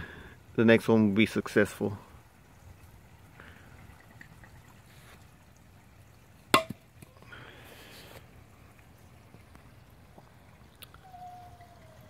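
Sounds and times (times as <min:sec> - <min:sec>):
water trickling and pouring: 0:00.1 - 0:12.0.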